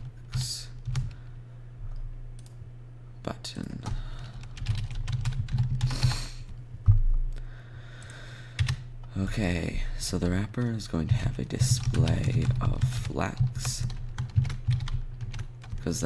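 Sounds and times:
keyboard typing: 3.8s - 6.1s, 8.0s - 8.8s, 10.6s - 16.0s.

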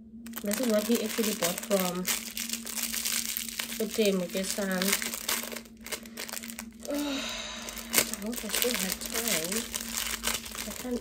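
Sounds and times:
plastic bag crinkling: 0.2s - 11.0s.

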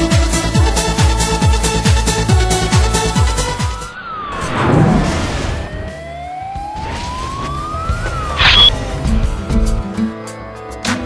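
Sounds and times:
synthetic tone sweeping in pitch: 3.9s - 8.7s
brief high ping: 8.4s - 8.7s
short whoosh: 8.4s - 8.7s.

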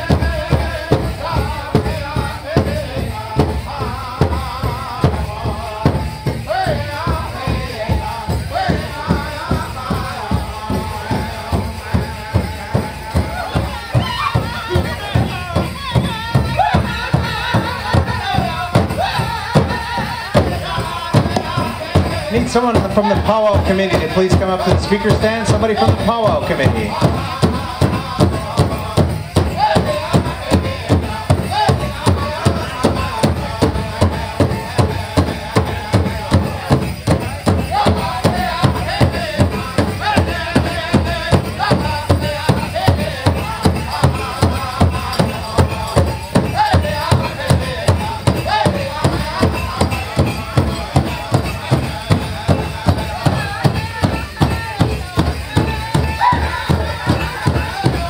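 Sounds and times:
group singing: 0.0s - 58.0s
large drum beaten in unison: 0.0s - 58.0s.

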